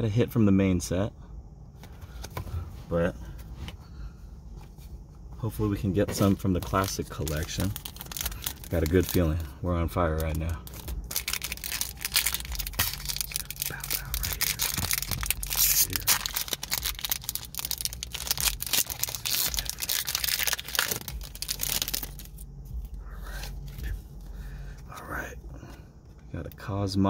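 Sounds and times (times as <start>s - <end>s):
cards rustling: 6.0s - 22.4s
foil wrapper crackling: 6.3s - 22.4s.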